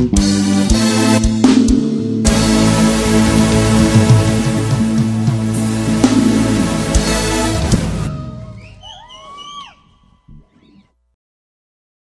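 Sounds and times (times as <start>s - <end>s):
high note swooping upward: 2.3s - 8.8s.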